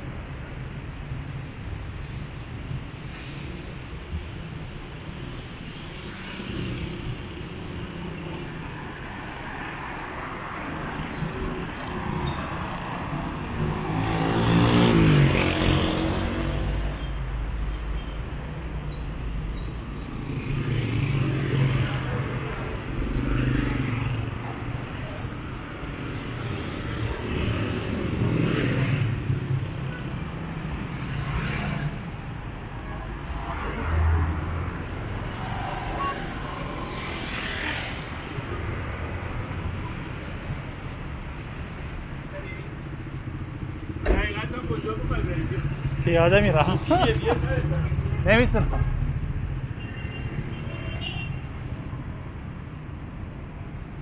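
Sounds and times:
cars and motorcycles driving past: 0:12.0 - 0:17.6, 0:18.6 - 0:32.3, 0:33.2 - 0:42.1.

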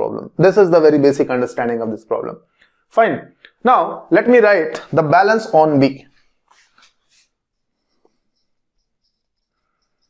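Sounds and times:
marker squeaking on whiteboard: 0:06.2 - 0:10.0.

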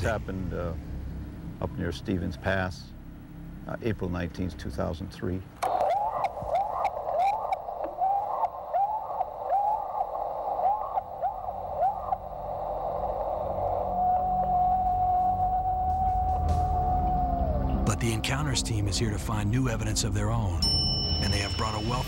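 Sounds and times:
recorder speaker hiss: 0:00.0 - 0:16.6, 0:17.6 - 0:22.0
short rising whoops from speaker: 0:13.6 - 0:17.8.

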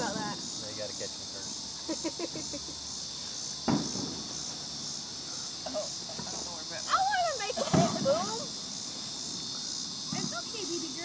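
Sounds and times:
crickets chirping: 0:00.0 - 0:11.0
sharp knock: 0:03.6 - 0:04.2.

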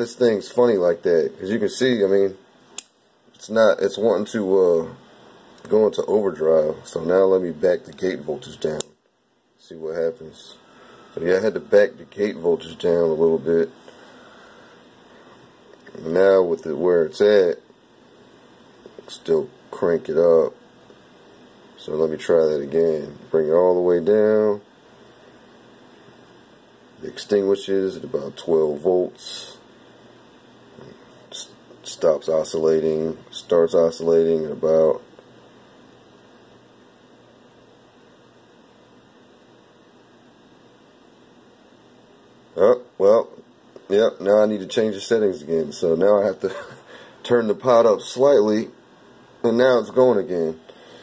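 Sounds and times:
faint steady hiss: 0:00.0 - 0:51.0.

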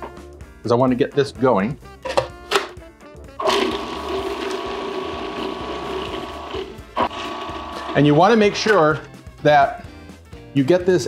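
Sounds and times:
food processor motor humming: 0:03.4 - 0:08.2.

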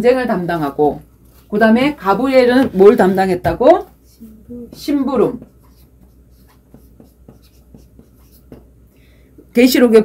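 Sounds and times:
chalk tapping and scratching: 0:01.3 - 0:08.8.

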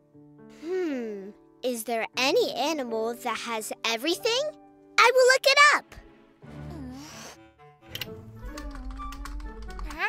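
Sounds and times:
soft background music: 0:00.0 - 0:10.0
laptop keyboard typing: 0:08.5 - 0:10.0.

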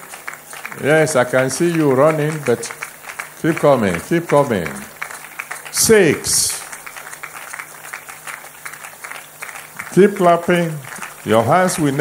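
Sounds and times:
crowd applauding: 0:00.0 - 0:12.0
man's amplified voice: 0:00.6 - 0:05.0, 0:05.7 - 0:06.8, 0:09.8 - 0:12.0.

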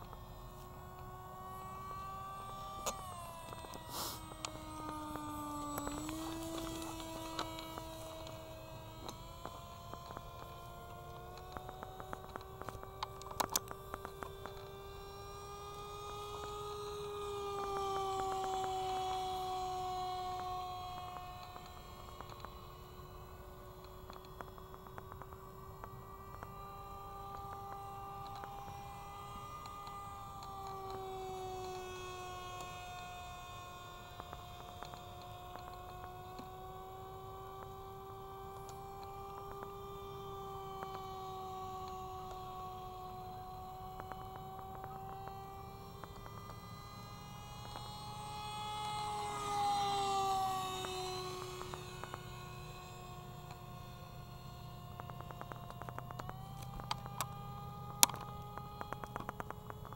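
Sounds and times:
model plane motor whining: 0:00.0 - 0:59.9.

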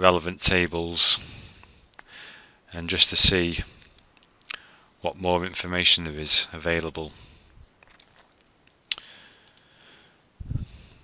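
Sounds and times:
computer mouse click: 0:01.9 - 0:02.4, 0:09.4 - 0:09.7.

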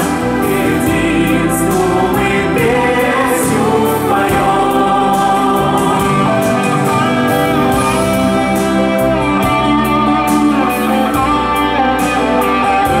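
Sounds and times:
voices singing in chorus: 0:00.0 - 0:11.6.

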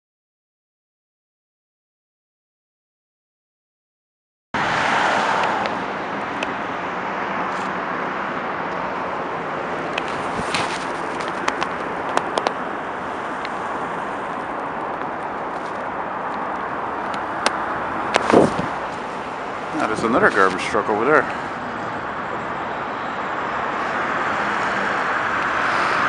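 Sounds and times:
city traffic roar: 0:04.6 - 0:26.0
sharp clicks and knocks: 0:09.9 - 0:12.6.

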